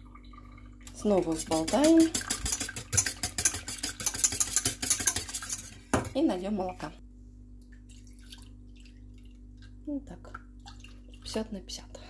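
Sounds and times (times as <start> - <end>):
whisk clicking in metal saucepan: 1.2 - 5.8.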